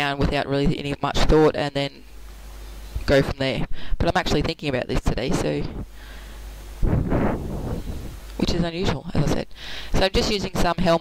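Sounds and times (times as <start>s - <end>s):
low microphone hum: 0.0s - 11.0s
breath on microphone: 6.0s - 8.2s.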